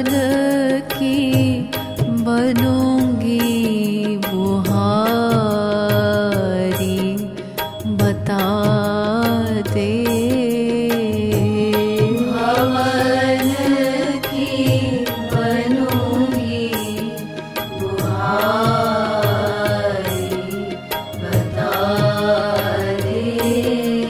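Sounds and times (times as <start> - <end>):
devotional song chanted: 0.0 - 24.0
percussion beat: 0.0 - 24.0
steady drone: 12.1 - 24.0.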